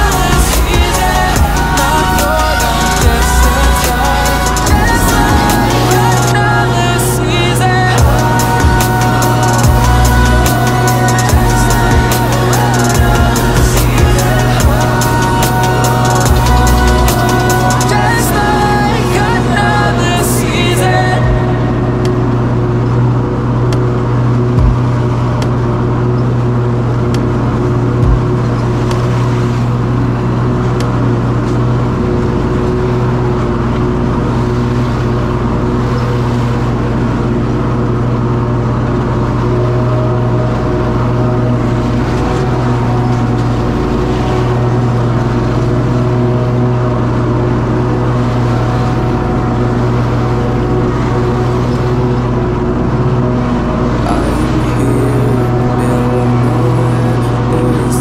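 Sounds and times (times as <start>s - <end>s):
low thumps: 0.0s - 6.6s, 24.5s - 25.6s, 28.0s - 29.3s
lawn mower engine running: 0.0s - 20.3s, 21.2s - 58.0s.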